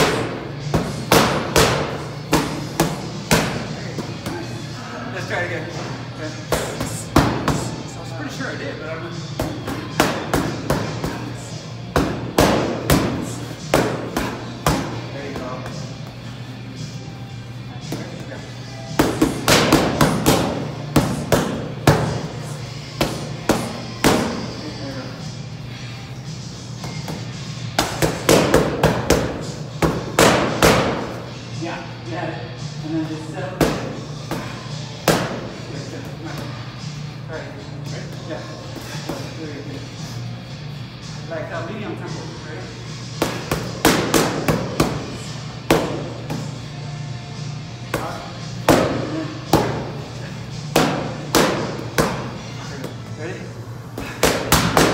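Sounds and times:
boxing gloves striking mitts: 0.0s - 4.2s, 9.4s - 15.8s, 18.9s - 22.3s, 26.8s - 31.2s, 43.2s - 46.6s, 47.9s - 50.0s, 50.6s - 52.4s, 54.0s - 54.9s
background music: 0.0s - 54.9s.

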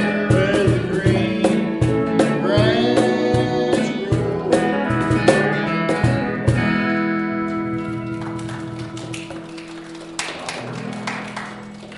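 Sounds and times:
acoustic and steel guitar chord: 0.0s - 8.4s.

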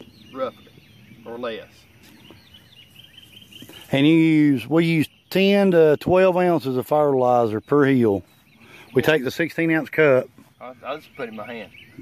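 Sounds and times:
faint high chirping: 0.0s - 12.0s
rural outdoor ambience: 0.0s - 12.0s.

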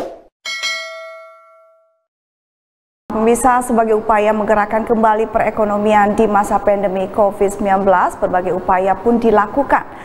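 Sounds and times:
notification bell ding: 0.5s - 2.0s.

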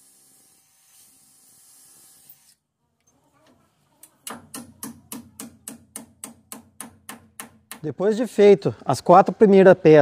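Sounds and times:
hammer driving nail into wood: 4.3s - 7.9s.

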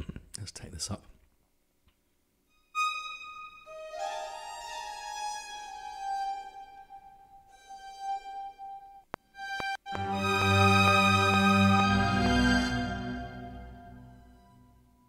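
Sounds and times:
violins sustaining high notes: 2.5s - 15.0s.

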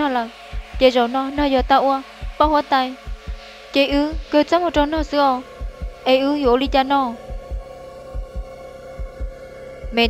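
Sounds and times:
held drone: 0.0s - 10.0s
soft bass thumps: 0.6s - 10.0s.

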